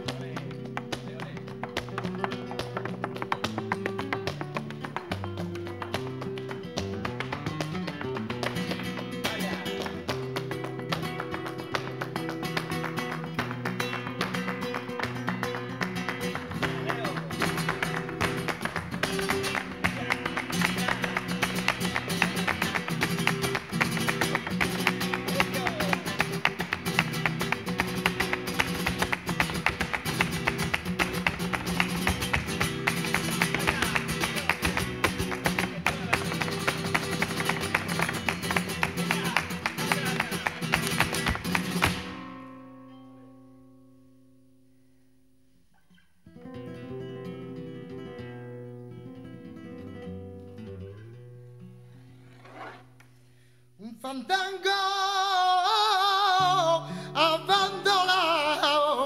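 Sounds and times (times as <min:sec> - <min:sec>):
flamenco guitar: 0:00.0 - 0:59.0
heel-and-toe dance footwork: 0:00.5 - 0:42.2.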